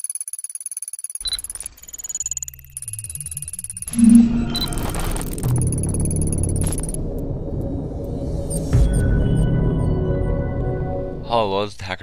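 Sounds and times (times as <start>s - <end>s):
high electronic blips: 3.6s - 7.0s
short beep: 3.9s - 6.6s.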